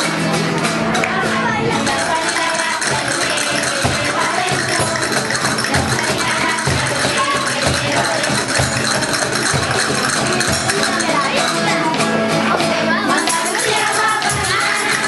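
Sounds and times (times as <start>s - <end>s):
children's choir singing: 0.0s - 15.0s
deep cajon beats: 0.0s - 15.0s
rattling hand percussion: 0.0s - 15.0s.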